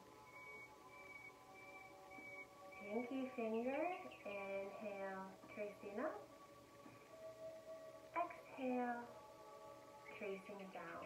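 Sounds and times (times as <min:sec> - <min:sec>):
faint flute music: 0:00.0 - 0:11.0.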